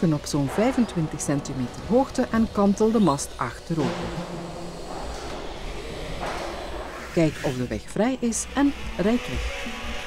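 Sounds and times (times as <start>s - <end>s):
hydraulics hissing: 0.0s - 9.4s
low electric hum: 0.0s - 9.9s.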